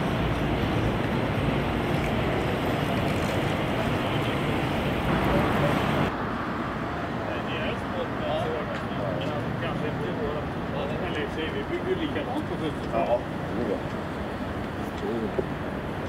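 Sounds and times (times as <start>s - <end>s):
traffic: 0.0s - 16.0s.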